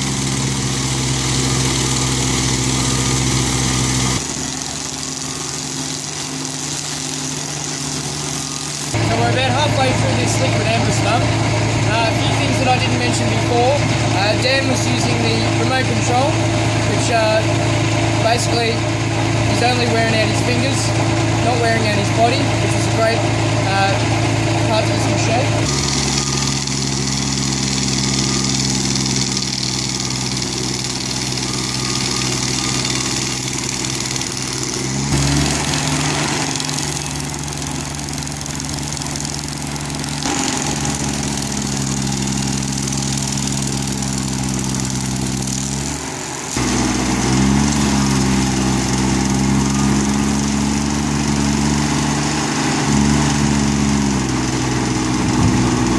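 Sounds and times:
cutter wheel grinding wood: 0.0 - 55.9
stump grinder engine under load: 0.0 - 55.9.

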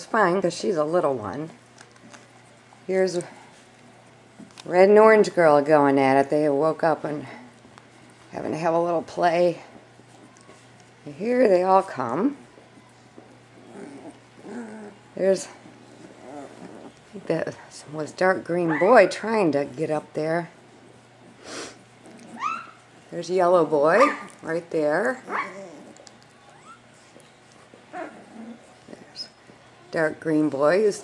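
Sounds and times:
puppies whining and growling: 12.4 - 17.2, 22.0 - 22.9, 23.9 - 29.2.

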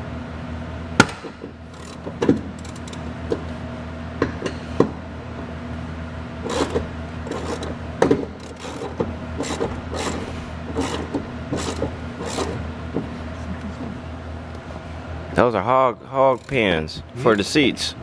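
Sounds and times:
steady low hum: 0.0 - 18.0
hand ratchet clicking: 1.7 - 3.1, 6.5 - 12.6, 16.3 - 16.7.

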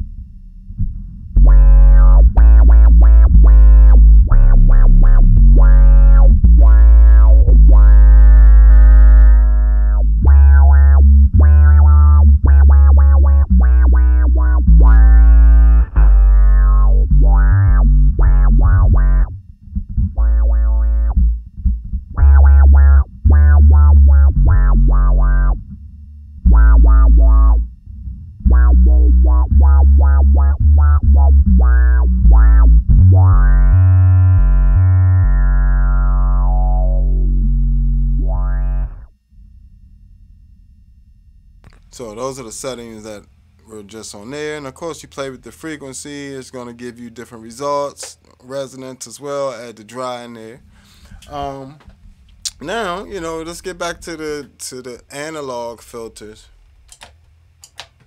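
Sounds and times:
funky staccato electric bass: 0.0 - 39.1.

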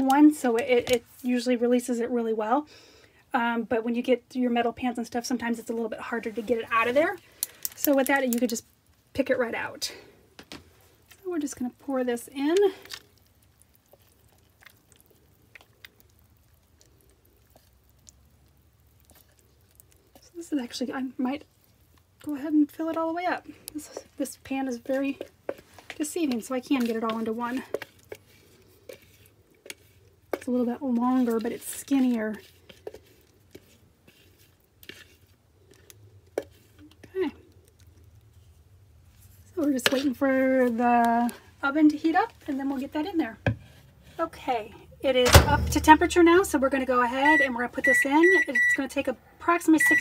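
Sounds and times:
soft wet clicks of batter: 7.2 - 9.0, 12.4 - 20.3, 21.4 - 22.3, 23.5 - 30.6, 31.3 - 38.4.

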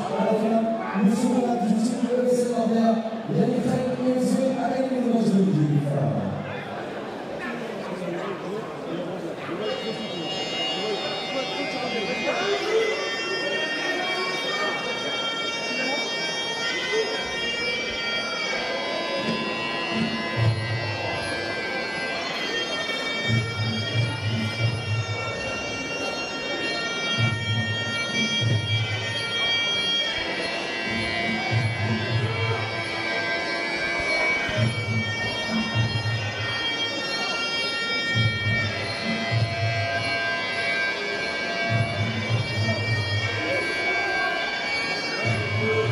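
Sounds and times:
nasal oboe melody: 9.6 - 45.9.

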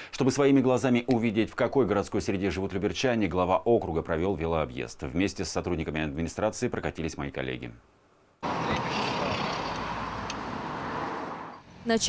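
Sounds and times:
road traffic noise: 8.4 - 12.0.

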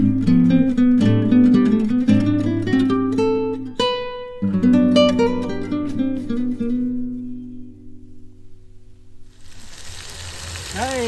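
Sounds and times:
acoustic guitar music: 0.0 - 11.0
chicken wings sizzling in a pan: 9.3 - 11.0.

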